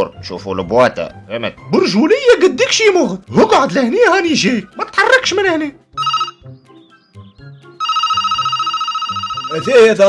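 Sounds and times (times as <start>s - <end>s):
soft background music: 0.0s - 10.0s
telephone ringing with warble: 6.0s - 6.4s, 7.8s - 10.0s.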